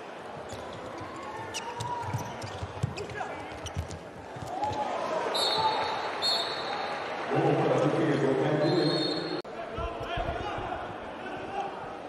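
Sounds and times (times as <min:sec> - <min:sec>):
ball bouncing on court floor: 0:00.4 - 0:04.8.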